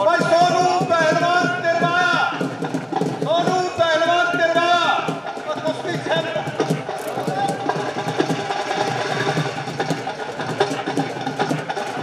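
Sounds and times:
crowd noise: 0.0s - 12.0s
fast drumming: 0.0s - 12.0s.

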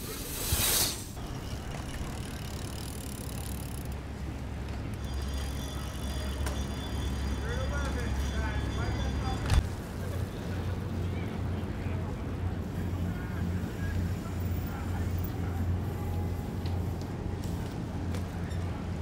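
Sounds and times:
faint distant voices: 5.8s - 19.0s.

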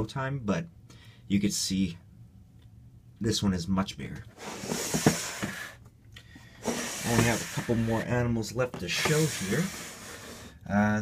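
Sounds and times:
plastic scraping on rack: 4.4s - 5.7s, 6.6s - 8.1s, 8.8s - 10.4s.

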